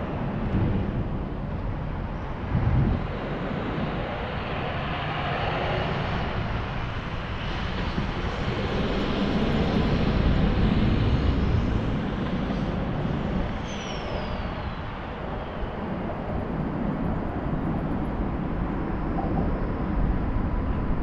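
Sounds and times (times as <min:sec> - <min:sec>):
wind rushing over microphone: 0:00.0 - 0:21.0.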